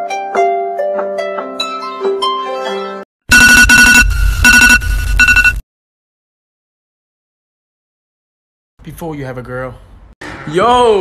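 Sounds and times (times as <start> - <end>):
electronic phone ringtone: 3.3 - 5.6.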